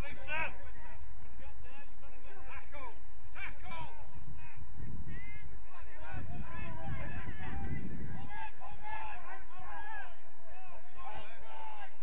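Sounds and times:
people shouting and calling out: 0.0 - 12.0
low rumble: 4.0 - 10.9.

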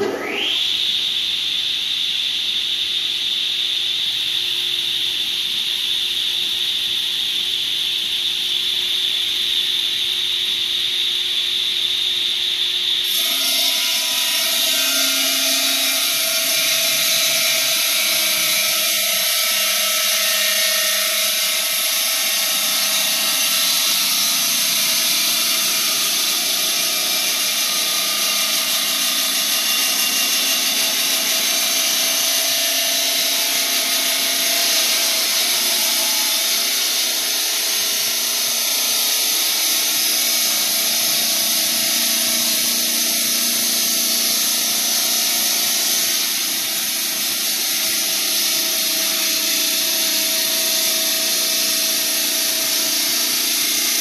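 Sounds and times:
stone saw high-pitched grinding: 0.0 - 0.9, 13.0 - 54.0.

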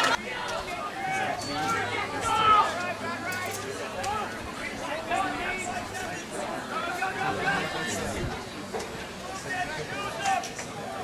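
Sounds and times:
people chatting indistinctly: 0.0 - 11.0.

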